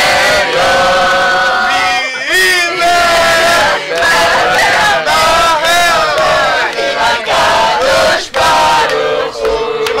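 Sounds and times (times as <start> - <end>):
teenagers singing in unison: 0.0 - 10.0.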